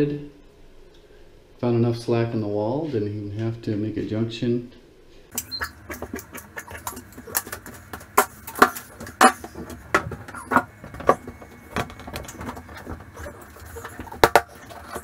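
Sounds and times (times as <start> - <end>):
low steady hum: 0.0 - 15.0
wall panel clicking and knocking: 6.0 - 15.0.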